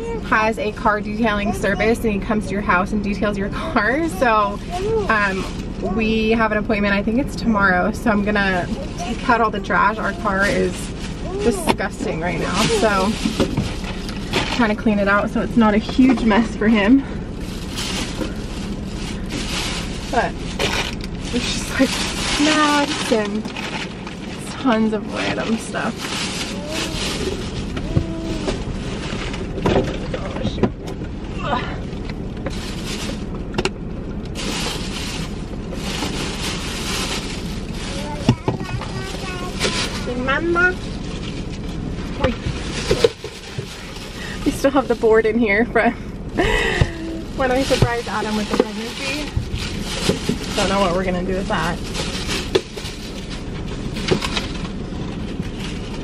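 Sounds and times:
plastic bags rustling: 0.0s - 30.4s, 31.2s - 56.0s.

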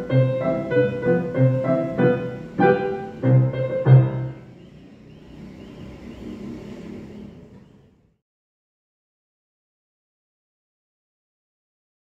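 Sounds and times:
piano chord ringing: 0.0s - 4.6s.

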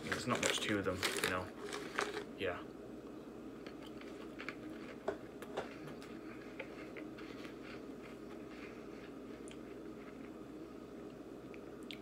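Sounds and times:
cheese cracker being chewed: 3.6s - 10.4s.

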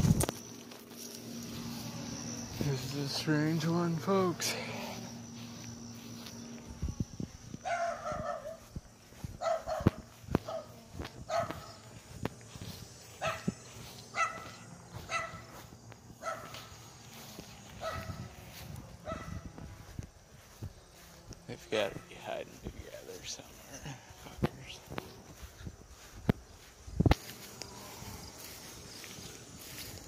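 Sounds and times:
footsteps on grass: 0.0s - 30.0s
dog barking: 7.6s - 8.6s, 9.4s - 11.8s, 13.2s - 13.6s, 14.2s - 15.4s, 16.2s - 16.6s, 17.8s - 18.2s, 19.0s - 19.4s.

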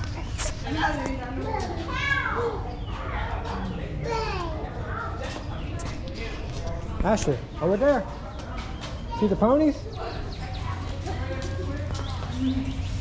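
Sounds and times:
children calling and chattering: 0.0s - 13.0s
murmur of people: 0.0s - 13.0s.

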